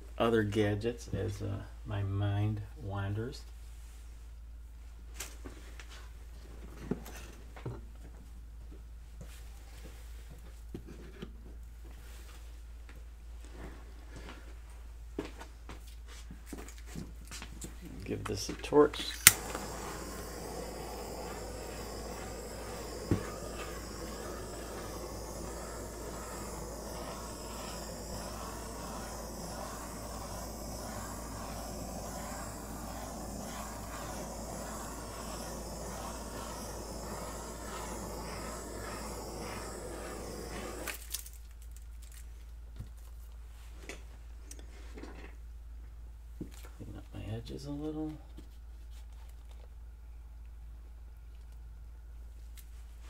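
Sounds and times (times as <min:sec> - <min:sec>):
torch flame hissing: 0:18.0 - 0:41.3.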